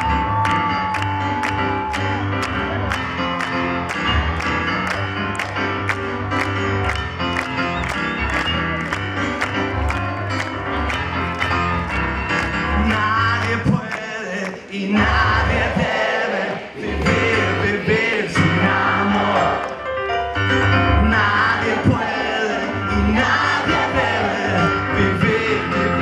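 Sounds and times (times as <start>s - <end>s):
live band with piano: 0.0s - 16.0s, 16.8s - 26.0s.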